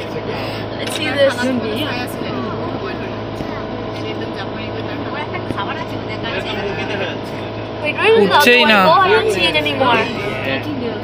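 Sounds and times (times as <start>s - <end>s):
passengers talking faintly: 0.0s - 11.0s
vehicle engine humming: 0.0s - 11.0s.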